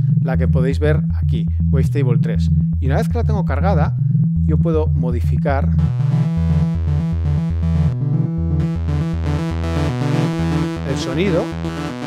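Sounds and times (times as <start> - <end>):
buzzy synthesizer low notes: 0.0 - 12.0.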